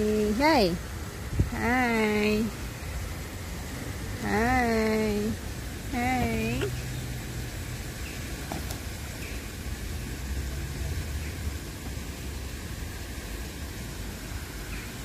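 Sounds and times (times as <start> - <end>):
even hiss: 0.0 - 15.0.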